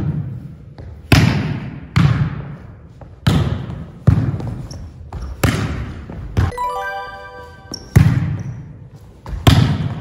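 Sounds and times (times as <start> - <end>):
chime-like sound effect: 6.5 - 8.4.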